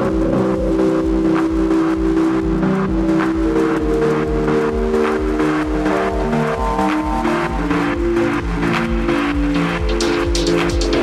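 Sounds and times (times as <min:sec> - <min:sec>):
sustained synth chords: 0:00.0 - 0:11.0.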